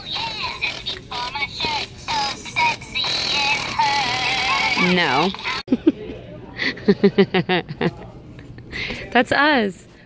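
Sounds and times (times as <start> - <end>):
greeting card song with singing: 0.0 - 5.6.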